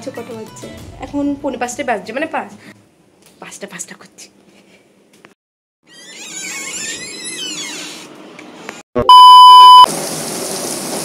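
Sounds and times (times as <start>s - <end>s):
door hinges squeaking: 5.9s - 8.1s.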